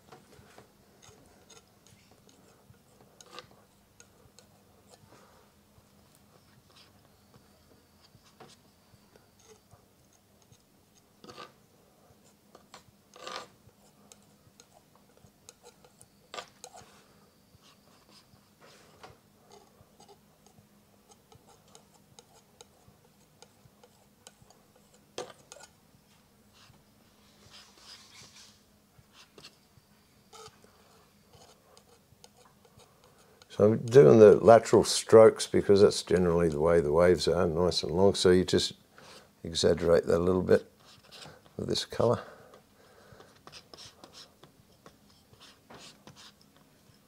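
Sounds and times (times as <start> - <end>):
palette knife scraping paint: 0.4 - 5.1, 6.4 - 25.8, 26.5 - 34.4, 40.8 - 41.5, 43.2 - 47.0.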